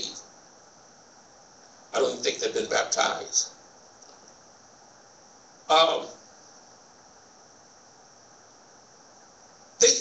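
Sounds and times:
man speaking: 0.0s - 0.2s, 2.0s - 3.6s, 5.7s - 6.2s, 9.8s - 10.0s
faint high hiss: 0.0s - 10.0s.

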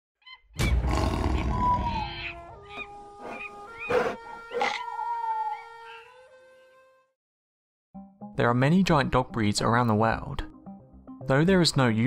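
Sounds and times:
deep animal roar: 0.8s - 2.1s.

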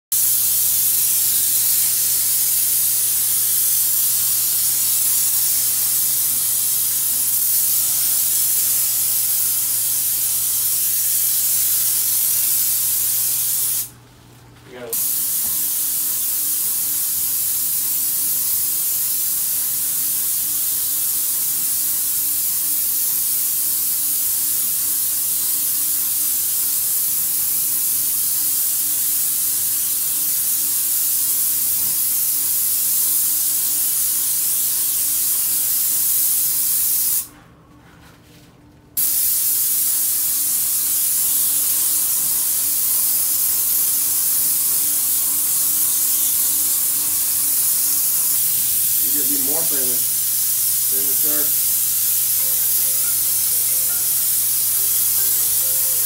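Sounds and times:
paint spray gun hissing: 0.1s - 13.9s, 14.9s - 37.3s, 39.0s - 56.0s.

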